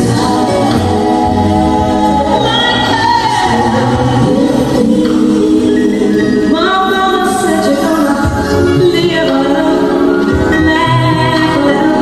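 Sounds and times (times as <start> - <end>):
band playing ballad: 0.0 - 12.0
choir-like harmony singing: 0.0 - 12.0
high voice singing: 0.0 - 12.0.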